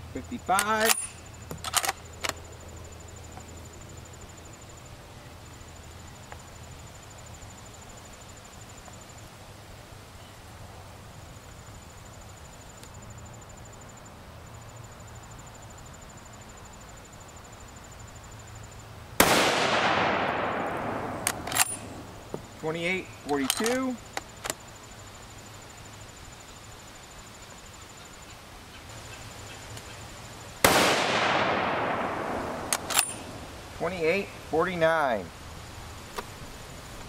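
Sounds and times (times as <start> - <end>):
faint outdoor background: 0.0 - 37.0
rifle shot: 19.2 - 22.1, 30.6 - 33.4.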